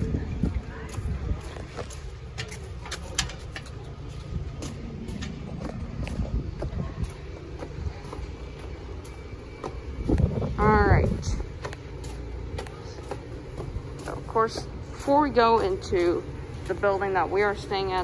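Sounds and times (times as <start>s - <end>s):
wind on microphone: 0.0s - 2.4s, 4.1s - 8.4s, 9.8s - 11.6s
footsteps on wooden boardwalk: 0.0s - 18.0s.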